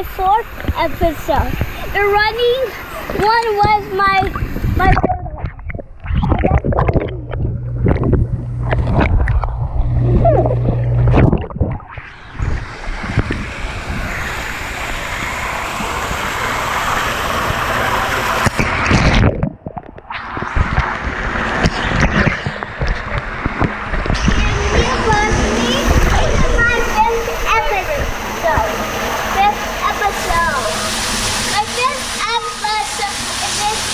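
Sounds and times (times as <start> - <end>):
pool water splashing: 0.0 - 33.9
running water rush: 0.0 - 33.9.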